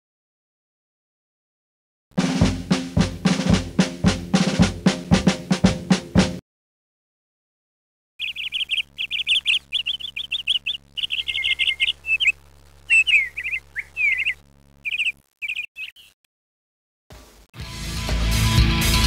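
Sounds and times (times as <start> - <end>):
faint low hum: 8.2 - 15.2
small birds chirping: 8.2 - 16.3.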